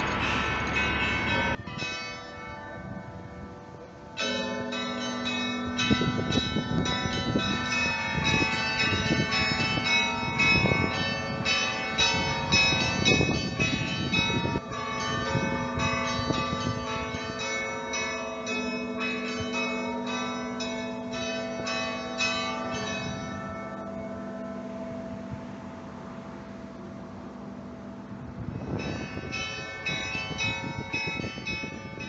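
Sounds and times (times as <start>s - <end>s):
small bells pealing: 0.0s - 25.4s, 28.6s - 32.0s
deep heavy bell strokes: 0.0s - 32.0s.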